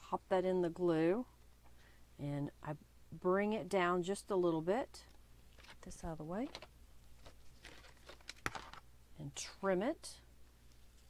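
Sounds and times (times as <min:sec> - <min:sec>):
paper strips rustling: 0:05.6 - 0:08.8.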